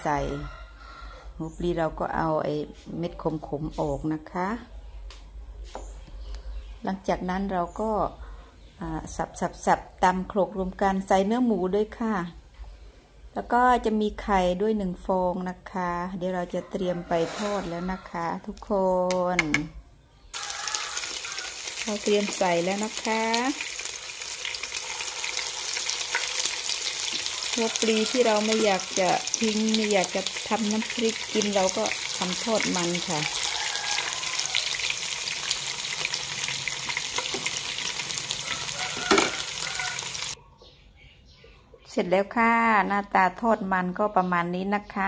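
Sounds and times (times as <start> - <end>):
fish-cake mixture sizzling in hot oil: 20.4 - 40.4.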